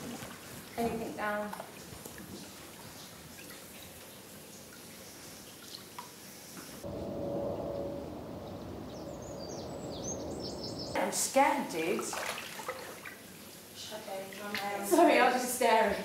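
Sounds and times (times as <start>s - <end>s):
water dripping: 0.0s - 6.8s, 8.0s - 15.4s
low hum: 6.8s - 11.0s
small water splashes: 11.8s - 14.9s.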